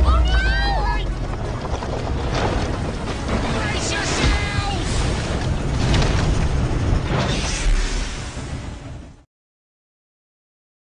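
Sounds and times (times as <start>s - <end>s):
rushing noise with low rumble: 0.0s - 9.3s.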